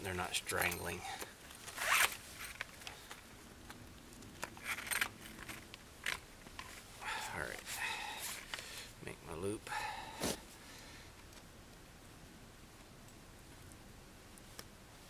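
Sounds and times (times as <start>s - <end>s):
steel cable zipping rasps: 1.7s - 2.5s.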